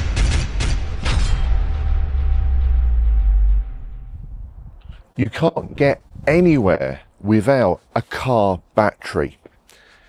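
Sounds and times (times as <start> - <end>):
deep cinematic boom rumble: 0.0 - 5.0.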